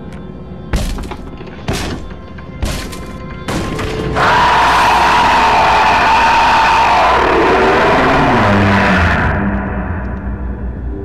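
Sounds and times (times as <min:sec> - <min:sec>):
crowd-like screaming noise: 0:04.1 - 0:09.6.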